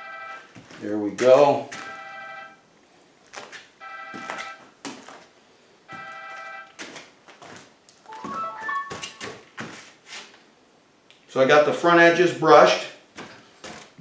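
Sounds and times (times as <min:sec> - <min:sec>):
phone ringtone: 0:00.0 - 0:00.5, 0:01.8 - 0:02.6, 0:03.8 - 0:04.6, 0:05.9 - 0:06.7, 0:08.1 - 0:09.3
rising notes: 0:08.1 - 0:09.3.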